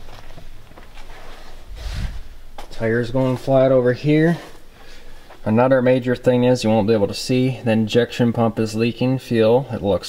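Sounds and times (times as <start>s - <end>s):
noisy hiss: 0.0s - 10.0s.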